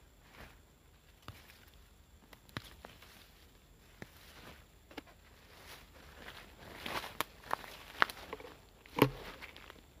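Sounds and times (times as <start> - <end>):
footsteps crunching on dry grass: 0.2 - 10.0.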